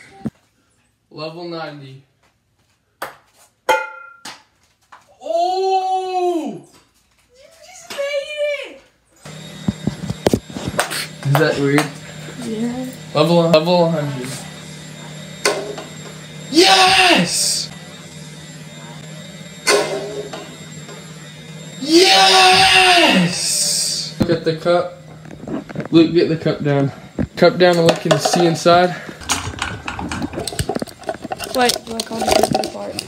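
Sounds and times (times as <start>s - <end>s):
person exclaiming: 5.1s - 6.7s, 16.5s - 17.7s, 21.8s - 24.2s
person shouting excitedly: 5.2s - 6.7s, 16.5s - 17.7s, 21.8s - 24.2s
ceiling fan humming: 5.2s - 33.0s.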